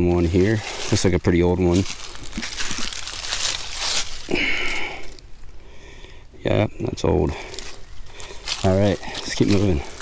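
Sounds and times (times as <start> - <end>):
dry leaves rustling and crunching: 0.0 - 5.4, 7.3 - 10.0.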